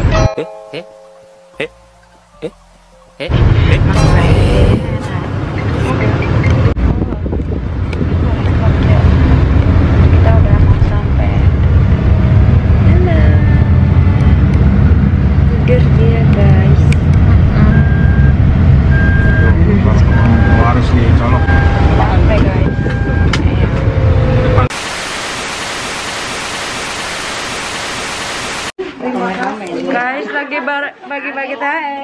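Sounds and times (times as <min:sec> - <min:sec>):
car engine and road rumble: 0:01.4 - 0:25.1
short beeps: 0:17.7 - 0:23.4.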